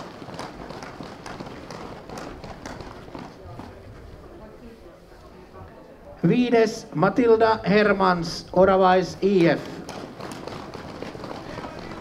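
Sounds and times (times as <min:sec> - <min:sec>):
footsteps on pavement: 0:00.0 - 0:04.3, 0:09.2 - 0:12.0
murmur of voices: 0:01.9 - 0:12.0.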